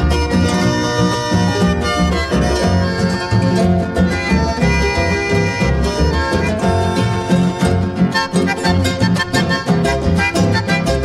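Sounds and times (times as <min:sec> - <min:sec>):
harp-led folk ensemble: 0:00.0 - 0:11.0.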